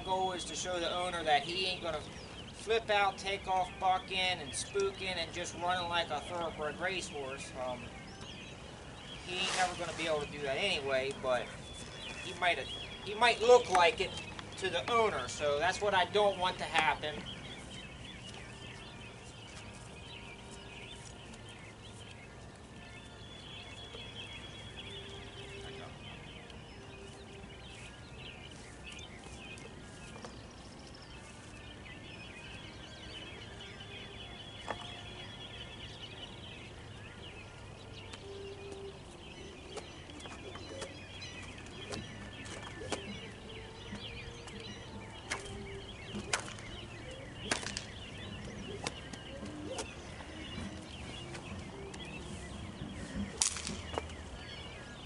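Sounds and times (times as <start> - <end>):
birds chirping: 0.0 - 55.0.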